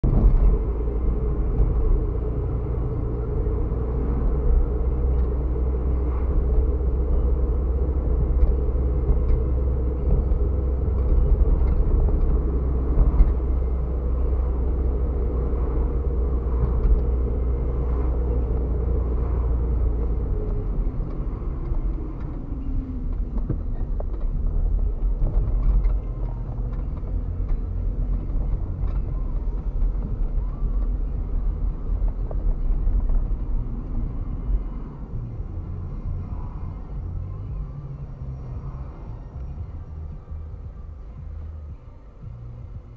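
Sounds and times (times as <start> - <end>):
car engine and road rumble: 0.0 - 42.9.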